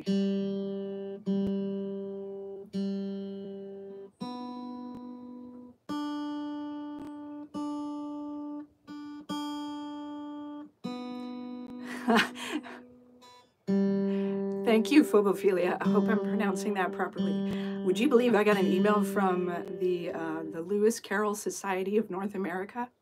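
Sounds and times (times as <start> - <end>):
acoustic guitar notes ringing: 0.0 - 21.4.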